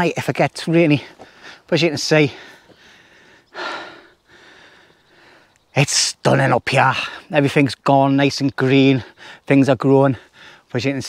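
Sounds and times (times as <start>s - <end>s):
man breathing out: 2.3s - 5.6s, 10.2s - 10.7s.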